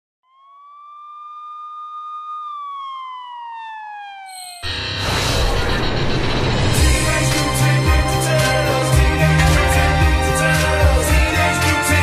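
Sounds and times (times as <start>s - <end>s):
siren-like wail: 0.2s - 7.0s.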